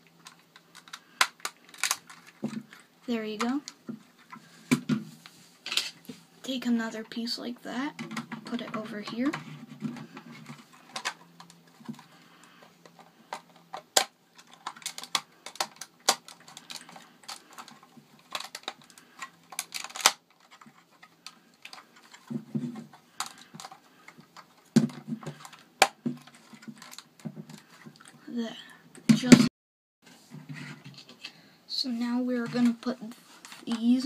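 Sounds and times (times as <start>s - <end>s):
plastic bricks clicking: 0.2s - 2.8s, 12.8s - 22.3s, 23.1s - 28.1s.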